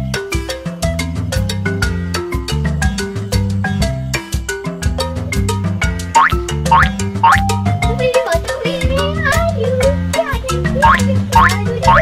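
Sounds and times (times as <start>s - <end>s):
upbeat children's music: 0.0s - 12.0s.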